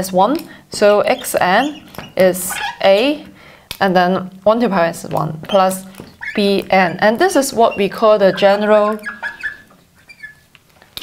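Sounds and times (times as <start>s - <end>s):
marker squeaking on glass: 0.8s - 3.3s, 5.4s - 10.5s.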